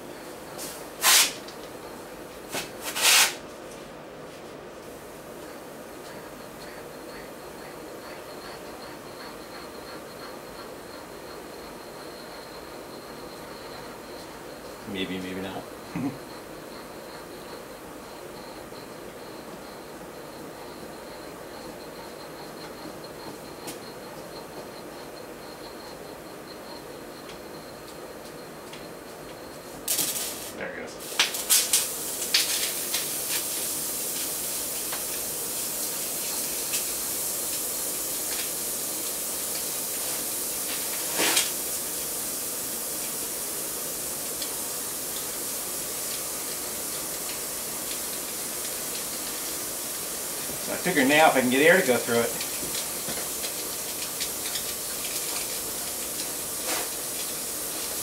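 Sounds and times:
compressed air hissing: 0.6s - 1.5s, 2.8s - 3.4s, 29.9s - 58.0s.

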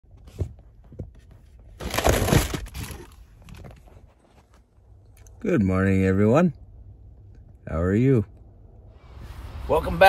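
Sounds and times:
soft bumps: 0.1s - 1.8s.

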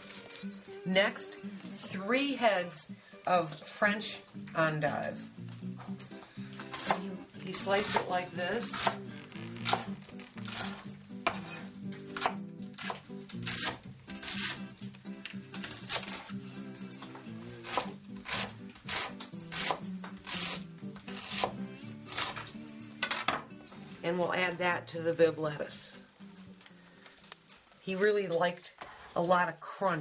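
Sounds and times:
background music: 0.0s - 28.4s
knife slicing on wooden board: 9.6s - 14.6s.

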